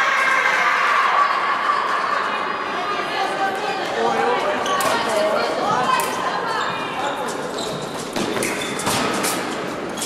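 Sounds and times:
voices in echoing hall: 0.0s - 10.0s.

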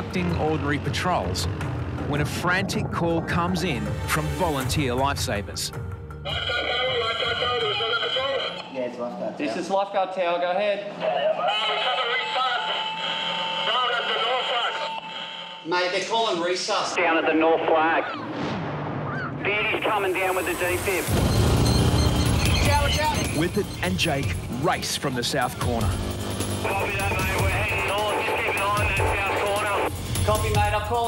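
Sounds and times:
background music with low bass: 0.0s - 8.1s, 21.1s - 31.0s
steady radio tone: 6.3s - 8.7s, 11.2s - 16.0s, 19.5s - 23.6s, 26.6s - 29.9s
voice over two-way radio: 6.3s - 8.7s, 11.4s - 15.1s, 26.7s - 29.9s.

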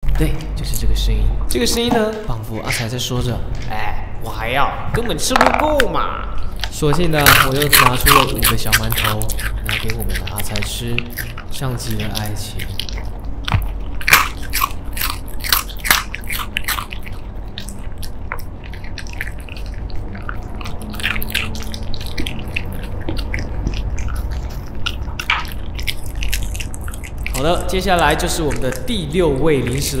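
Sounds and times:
dog crunching crisp snacks: 6.4s - 30.0s.

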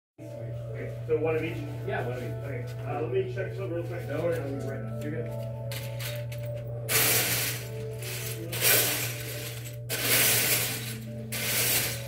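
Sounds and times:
faint music: 0.2s - 12.0s.

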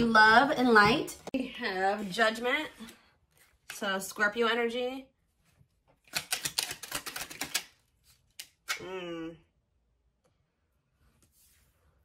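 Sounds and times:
cards being shuffled: 5.9s - 8.8s.

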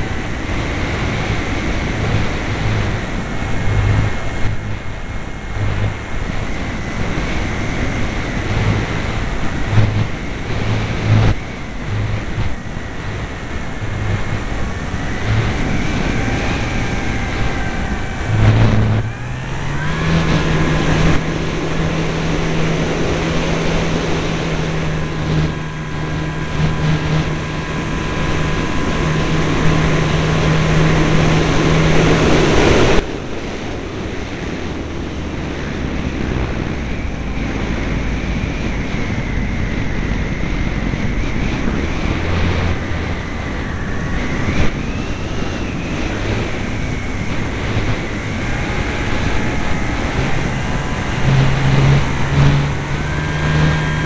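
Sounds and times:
electric motor and propeller whine: 0.0s - 54.0s
wind rushing over microphone: 0.0s - 54.0s.

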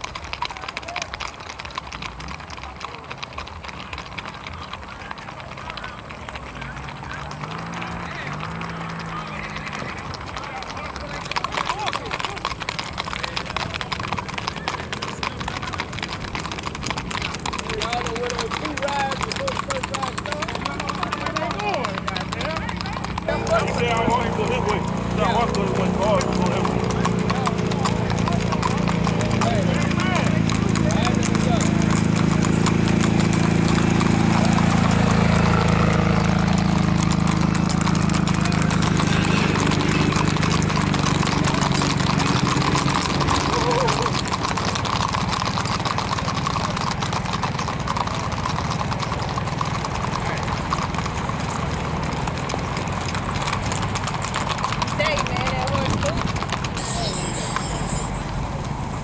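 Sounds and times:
hooves clip-clopping on asphalt: 0.0s - 59.0s
vehicle engine hum: 0.0s - 59.0s
people talking: 1.8s - 16.1s, 17.2s - 33.3s, 38.2s - 44.8s, 50.1s - 50.7s, 54.7s - 58.7s.

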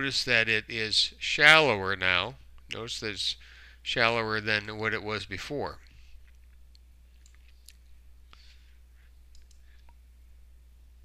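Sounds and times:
low electrical hum: 0.0s - 11.0s
faint clicks: 9.3s - 10.0s.

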